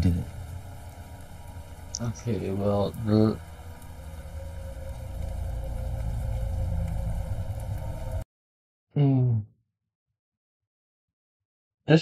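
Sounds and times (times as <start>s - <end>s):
deep low rumble: 0.0s - 8.2s
rain hissing: 0.0s - 8.2s.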